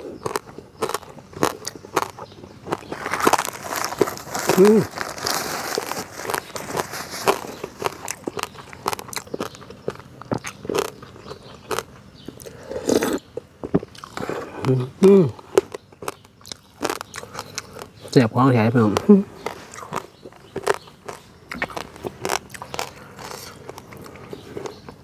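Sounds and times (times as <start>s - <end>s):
chewing and crunching: 0.0s - 25.0s.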